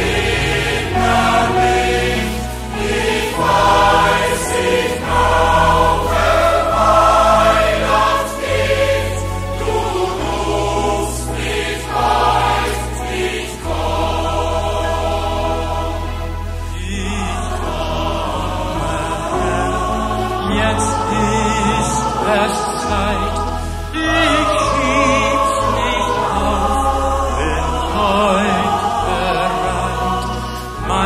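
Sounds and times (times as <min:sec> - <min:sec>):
choir singing a hymn: 0:00.0 - 0:31.0
sustained low accompaniment notes: 0:00.0 - 0:31.0.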